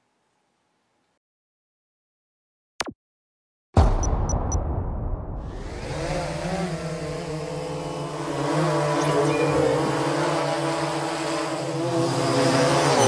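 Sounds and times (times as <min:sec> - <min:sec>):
quadcopter drone hum: 0:05.5 - 0:13.0.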